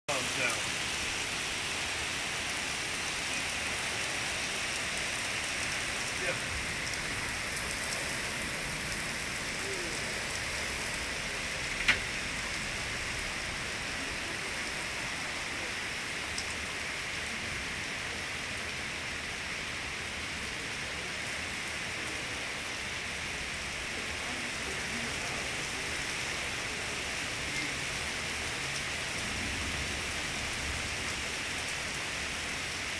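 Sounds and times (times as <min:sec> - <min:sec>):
heavy rain falling: 0:00.1 - 0:32.9.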